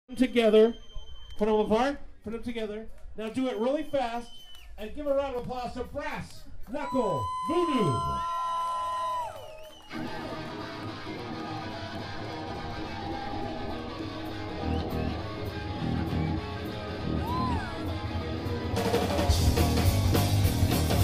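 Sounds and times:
electric guitars: 9.9s - 21.0s
drum kit: 14.2s - 21.0s.

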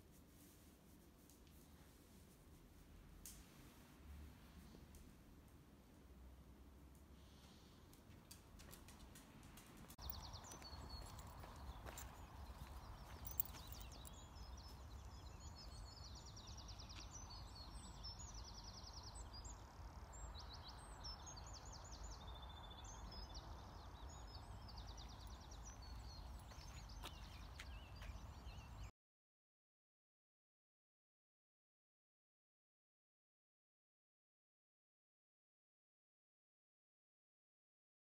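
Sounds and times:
songbirds chirping and trilling: 7.2s - 28.9s.

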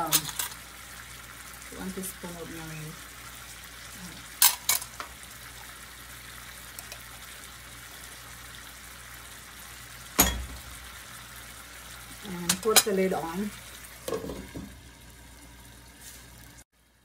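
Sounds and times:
fish sizzling in a pan: 0.0s - 17.0s.

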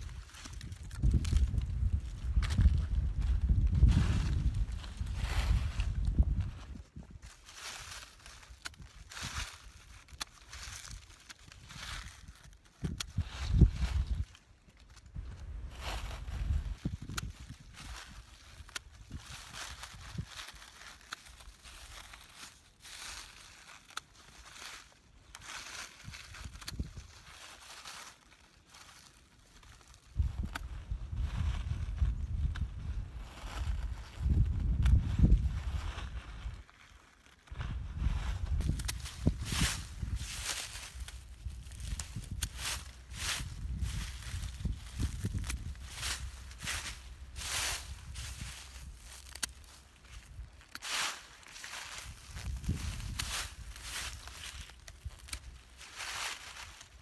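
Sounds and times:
dry leaves rustling and crackling: 0.0s - 57.0s.

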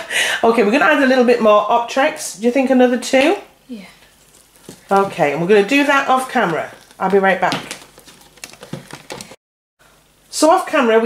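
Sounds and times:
spoon stirring thick mix squelches: 4.0s - 9.4s.

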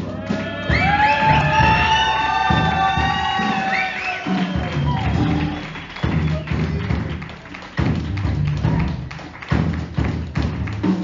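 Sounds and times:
drum kit hits: 0.0s - 11.0s
upright double bass: 0.0s - 11.0s.

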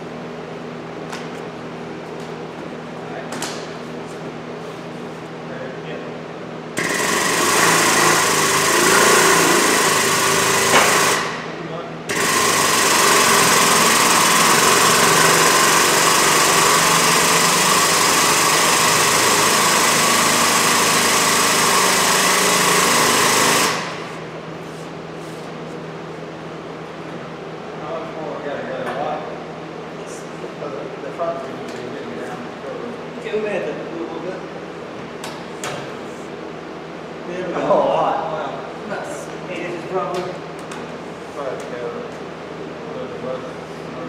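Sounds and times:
jack pump motor running: 6.7s - 24.5s.

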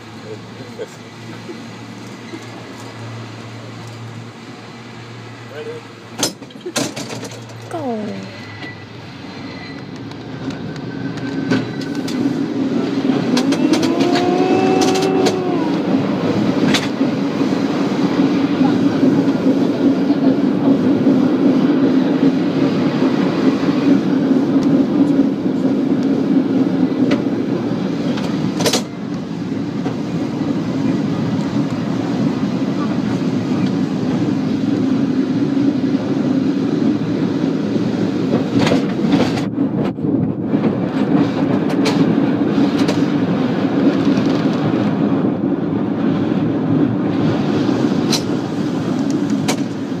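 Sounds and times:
cable car rumbling on rails: 0.0s - 50.0s.

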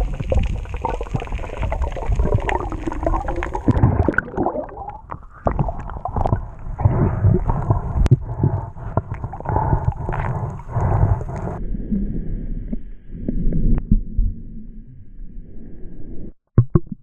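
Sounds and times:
small knocks underwater: 0.0s - 10.4s
underwater water rushing: 0.0s - 11.6s
dull low rumble: 5.6s - 16.4s.

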